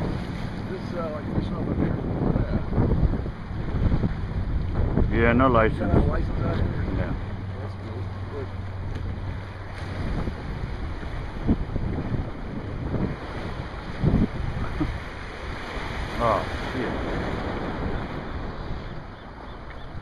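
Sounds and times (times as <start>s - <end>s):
low bumps: 0.0s - 15.0s
waves surging against pier: 0.0s - 20.0s
wind buffeting microphone: 0.0s - 20.0s.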